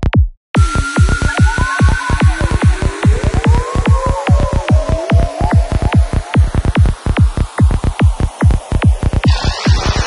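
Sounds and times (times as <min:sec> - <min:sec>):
rising noise sweep: 0:00.6 - 0:08.3
electronic drum roll: 0:00.6 - 0:10.0.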